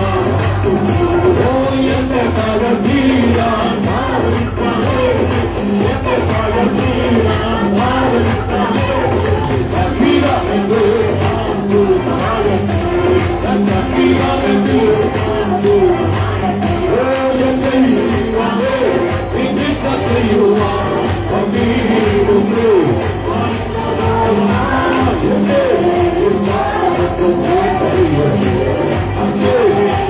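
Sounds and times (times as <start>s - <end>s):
band accompaniment: 0.0s - 30.0s
group singing worship song: 0.0s - 30.0s
hand clapping: 0.0s - 30.0s.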